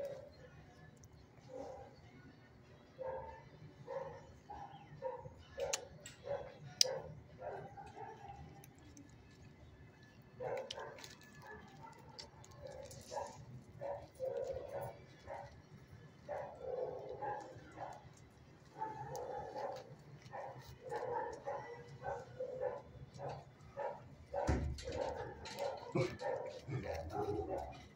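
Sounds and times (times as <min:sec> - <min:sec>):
dogs barking: 0:01.4 - 0:02.0, 0:02.9 - 0:08.7, 0:10.4 - 0:27.9.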